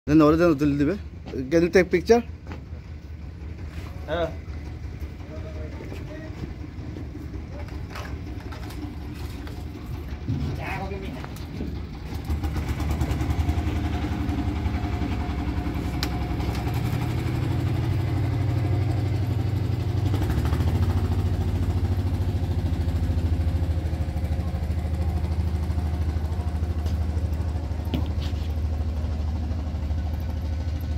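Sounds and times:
diesel engine droning: 0.2s - 30.9s.

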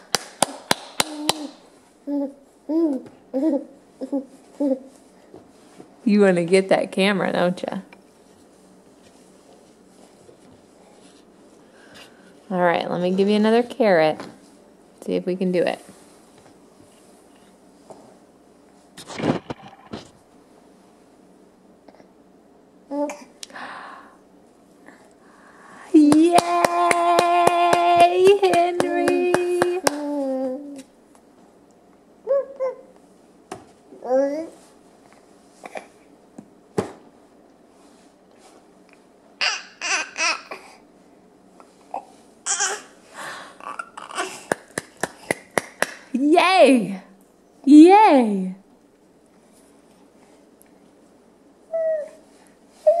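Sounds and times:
hands clapping: 0.0s - 1.6s, 26.0s - 30.2s, 44.5s - 46.1s
baby vocalizing: 43.6s - 44.5s.

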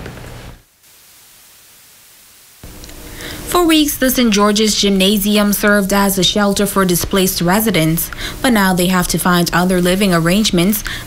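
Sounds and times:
static hiss: 0.0s - 11.0s
low hum: 2.6s - 11.0s.

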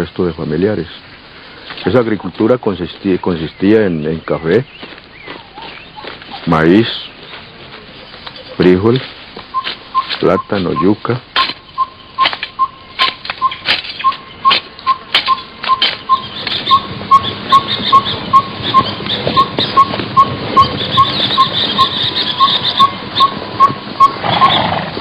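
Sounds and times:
sharp clicks: 11.3s - 24.2s.

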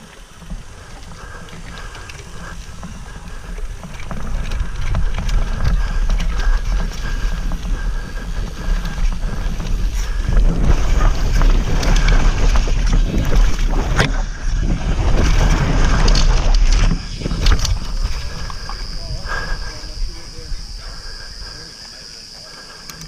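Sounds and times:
bike rattles and knocks: 0.0s - 20.0s
wind buffeting microphone: 0.0s - 21.9s
bike tyre noise: 0.0s - 23.0s.

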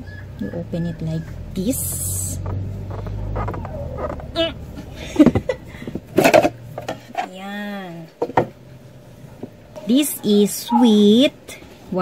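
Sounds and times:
low hum: 0.0s - 11.6s.

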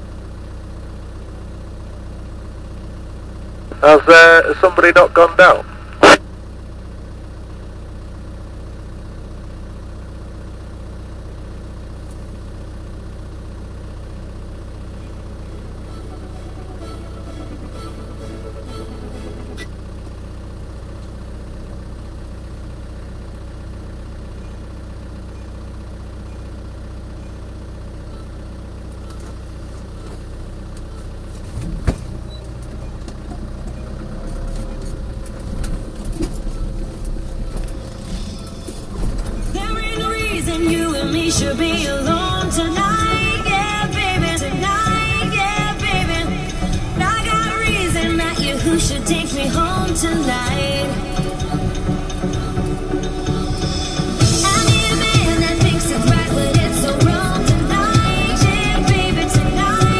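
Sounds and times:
vehicle engine idling: 0.0s - 59.9s.

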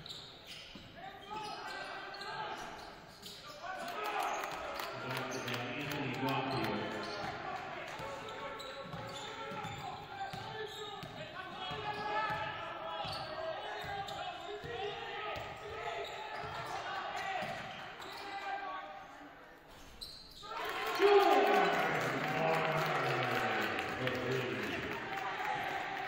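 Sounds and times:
crowd cheering: 20.4s - 26.0s.

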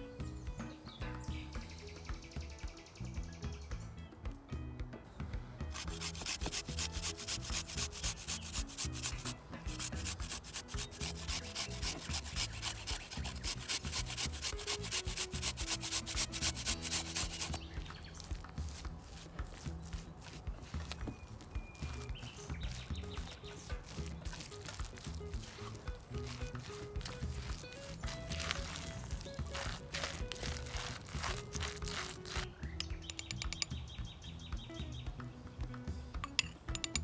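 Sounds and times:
garlic grated on metal grater: 5.7s - 18.3s, 22.6s - 32.5s.

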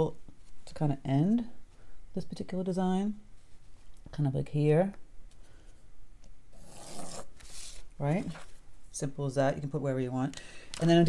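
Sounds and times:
pencil scratching on paper: 6.6s - 7.8s.

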